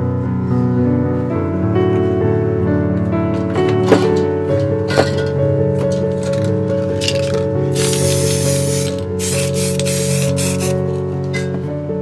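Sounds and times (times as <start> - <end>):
background music sustained notes: 0.0 - 12.0
spray paint can hissing: 7.2 - 10.8.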